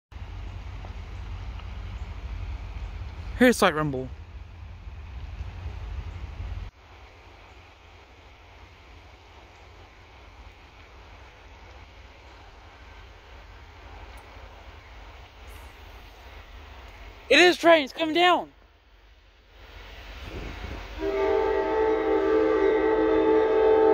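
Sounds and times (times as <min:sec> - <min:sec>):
distant train locomotive rumble: 0:00.1 - 0:17.3, 0:18.2 - 0:23.9
wind buffeting microphone: 0:20.2 - 0:21.0.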